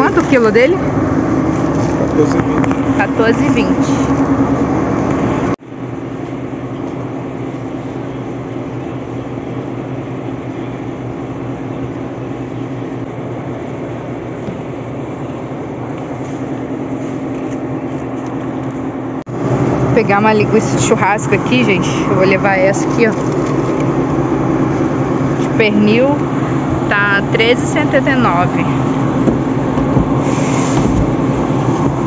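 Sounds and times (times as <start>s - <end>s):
refrigerator hum: 0.0s - 32.0s
supermarket background din: 20.0s - 24.0s.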